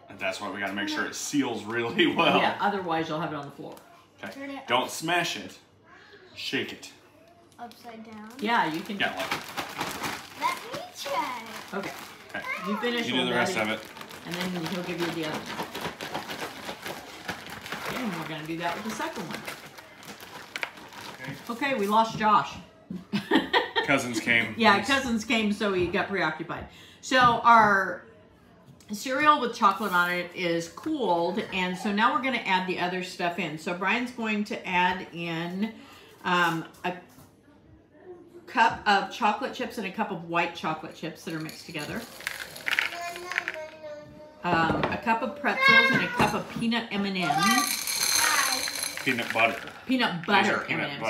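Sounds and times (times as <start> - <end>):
plastic bag rustling: 7.6 - 22.2, 42.0 - 43.7, 47.2 - 51.0
cereal stirred in plastic bowl: 8.4 - 21.8, 42.0 - 43.6, 47.3 - 50.8.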